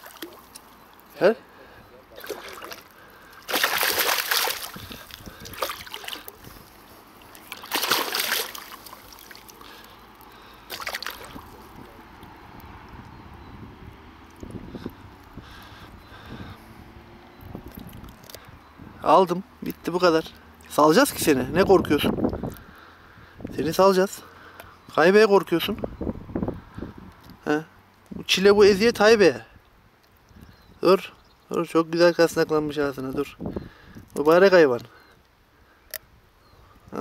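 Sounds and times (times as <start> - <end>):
fish thrashing at water surface: 0.0 - 0.6, 2.2 - 6.6, 7.2 - 9.9, 10.6 - 11.9
water splashes: 0.0 - 1.2, 2.1 - 12.4.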